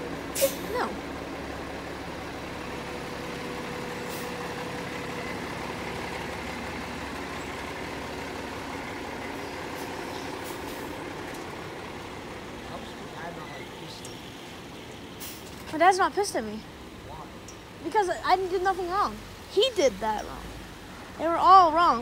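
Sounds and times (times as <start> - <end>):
diesel engine idling: 0.0 - 22.0.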